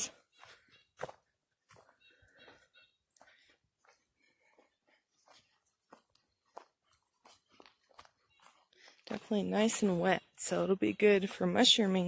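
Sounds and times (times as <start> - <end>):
footsteps crunching on forest floor: 0.0 - 11.1.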